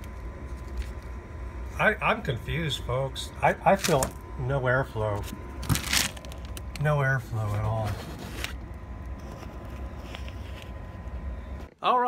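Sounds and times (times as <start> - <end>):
furnace low rumble: 0.0 - 12.0.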